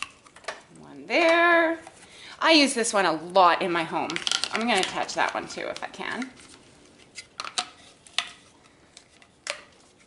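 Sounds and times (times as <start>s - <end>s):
plastic parts snapping together: 9.0s - 9.7s.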